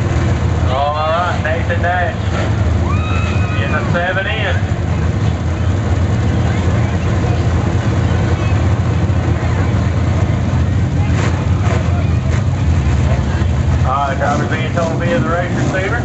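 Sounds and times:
race car engines idling: 0:00.0 - 0:16.0.

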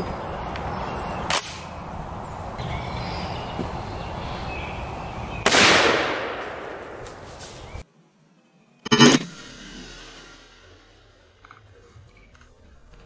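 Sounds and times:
shotgun shot echoing: 0:05.4 - 0:07.3.

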